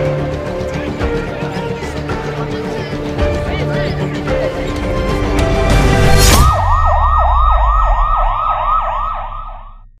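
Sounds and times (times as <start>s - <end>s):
electronic siren yelping: 6.4s - 9.9s.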